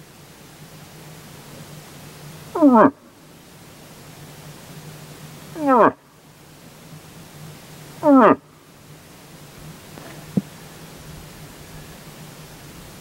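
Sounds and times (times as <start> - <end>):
moose call through calling horn: 2.5 - 3.1, 5.5 - 6.1, 7.9 - 8.6.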